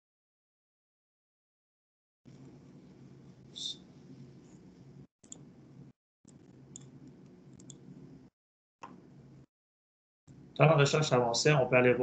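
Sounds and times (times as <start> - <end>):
low steady hum: 2.3 - 9.5
computer clicks: 6.3 - 7.8.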